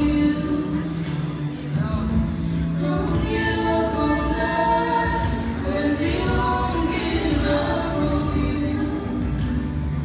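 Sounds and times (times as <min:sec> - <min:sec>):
women singing gospel in harmony: 0:00.0 - 0:09.8.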